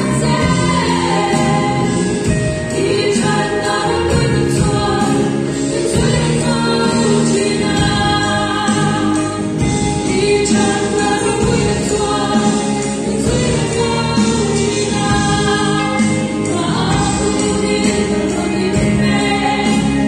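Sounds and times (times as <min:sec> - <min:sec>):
young women singing together: 0:00.0 - 0:20.0.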